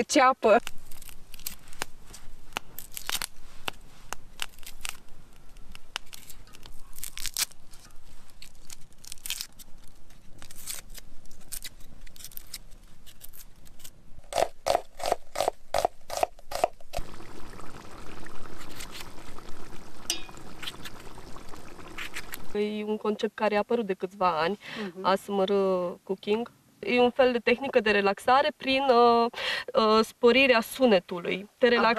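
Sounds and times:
onion skins crackling and tearing: 0.2s - 22.6s
knife scraping under onion skin: 0.5s - 17.0s.

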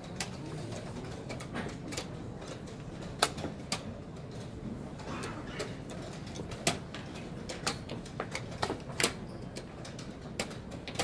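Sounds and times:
low murmur of room: 0.0s - 11.0s.

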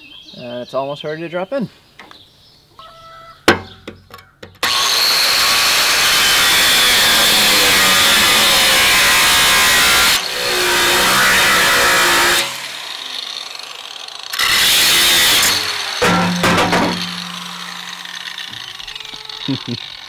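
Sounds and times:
angle grinder cutting steel: 4.6s - 20.0s.

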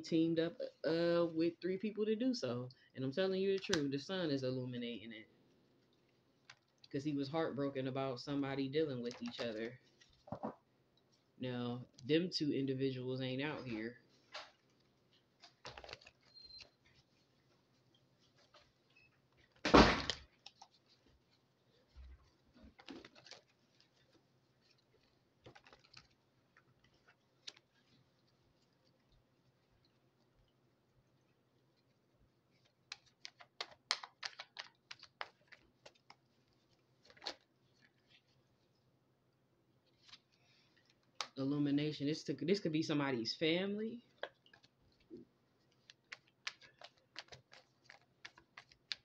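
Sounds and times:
cards clicking on a table: 32.9s - 36.1s, 45.9s - 49.0s.

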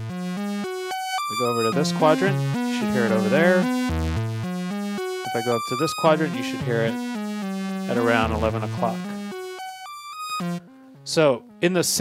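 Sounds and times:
synthesizer note sequence: 0.0s - 11.6s
faint low synth tone: 7.9s - 9.6s.

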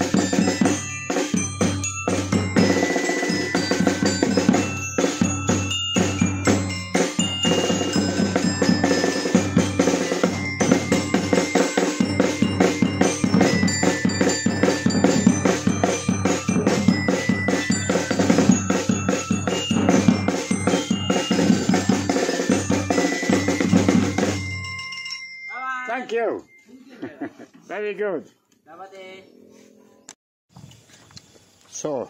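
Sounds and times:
street band drumming: 0.0s - 25.2s
xylophone notes ringing: 0.0s - 27.3s.

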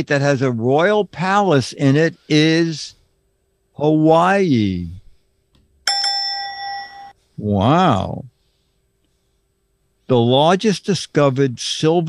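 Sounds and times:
bell ding: 5.9s - 7.2s.

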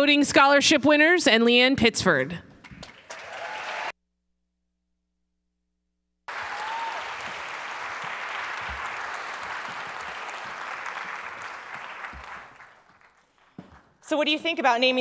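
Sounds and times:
large audience applauding: 2.6s - 3.9s, 6.3s - 13.8s.

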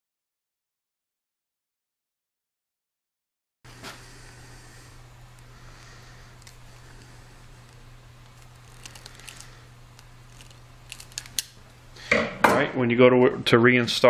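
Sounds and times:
steady low hum: 3.7s - 14.0s
crimping tool clicking: 6.4s - 11.6s.

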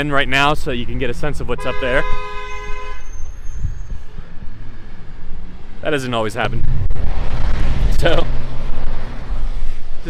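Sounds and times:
street traffic rumble: 0.0s - 10.0s
wind on microphone: 3.2s - 5.8s, 6.4s - 10.0s.

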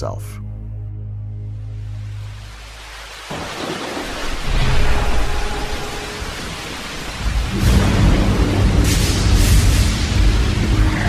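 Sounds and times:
rain: 1.7s - 11.0s
thunder rumbling: 3.2s - 11.0s.

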